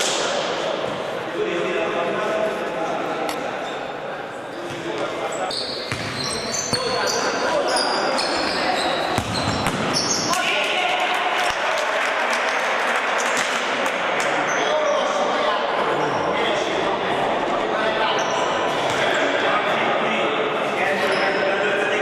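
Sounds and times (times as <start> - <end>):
shoe squeaks: 3.6 - 10.4, 20.9 - 21.5
ball kicks and bounces: 9.1 - 10.0.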